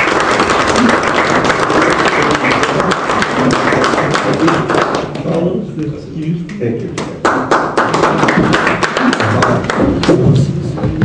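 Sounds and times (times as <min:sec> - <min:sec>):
roomful of people applauding: 0:00.0 - 0:05.6, 0:06.8 - 0:11.0.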